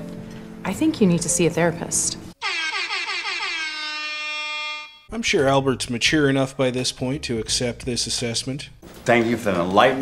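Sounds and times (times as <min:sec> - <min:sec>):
air horn blast: 0:02.4 - 0:05.2.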